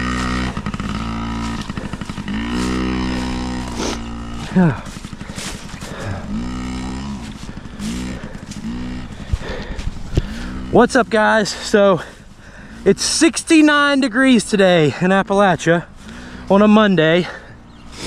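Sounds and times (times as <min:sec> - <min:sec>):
dirt bike engine revving: 0:00.0 - 0:18.0.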